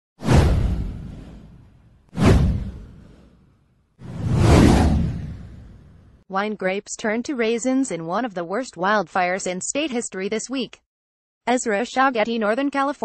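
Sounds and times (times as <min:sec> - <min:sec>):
bassy whoosh sound effects: 0:00.2 - 0:06.2.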